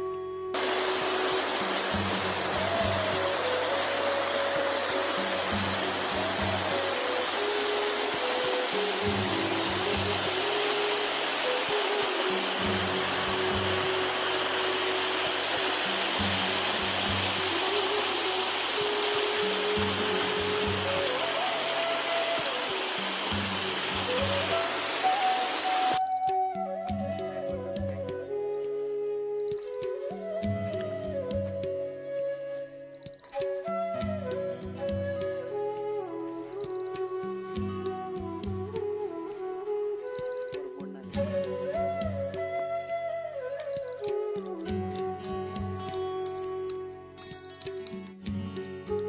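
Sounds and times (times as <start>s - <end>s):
background music with melody: 0.0s - 49.0s
stream cascading over rocks: 0.6s - 26.0s, 43.4s - 48.2s.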